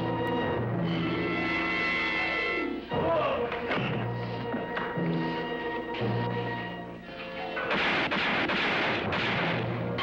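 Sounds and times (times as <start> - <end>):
dramatic music: 0.0 - 10.0
loud gunshots: 7.7 - 10.0.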